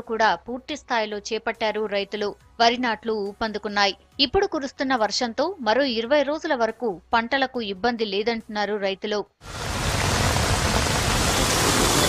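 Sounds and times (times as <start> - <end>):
heavy rain on standing water: 9.4 - 12.0.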